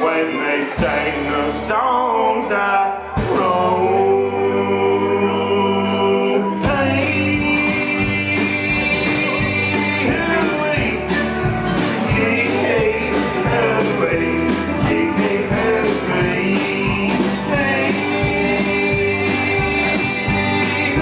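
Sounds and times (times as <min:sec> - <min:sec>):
acoustic and electric guitars: 0:00.0 - 0:21.0
drum kit beat: 0:00.8 - 0:01.6, 0:06.6 - 0:21.0
electric bass: 0:00.8 - 0:21.0.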